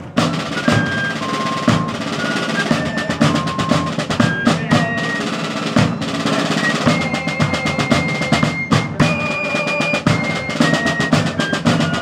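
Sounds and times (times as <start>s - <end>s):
snare drum rolls: 0.0s - 12.0s.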